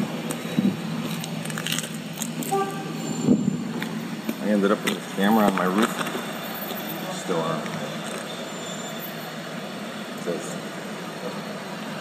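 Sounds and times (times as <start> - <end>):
vehicle running: 0.0 - 12.0.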